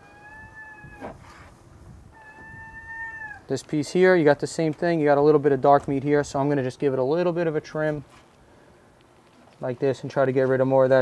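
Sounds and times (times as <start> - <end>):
soft rustle: 1.0 - 2.0, 7.8 - 10.8.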